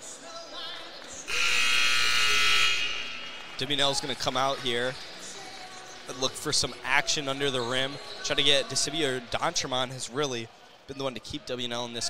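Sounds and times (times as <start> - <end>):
buzzing scoreboard horn: 1.3 - 3.9.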